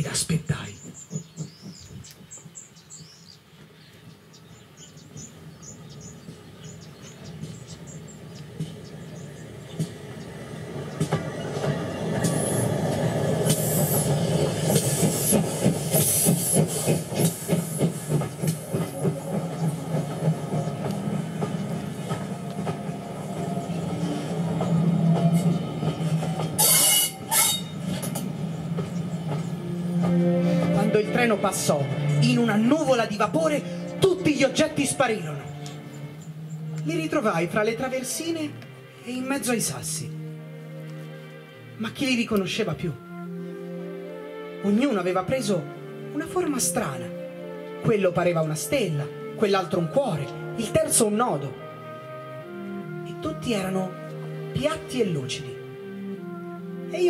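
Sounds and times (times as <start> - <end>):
steam train wheels clattering: 0.1 - 3.3, 5.2 - 30.9
steam hissing: 12.2 - 25.3.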